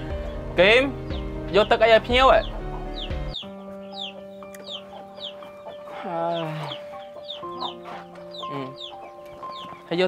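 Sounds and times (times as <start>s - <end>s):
chicks peeping: 0.0s - 10.0s
quiet background music: 0.0s - 10.0s.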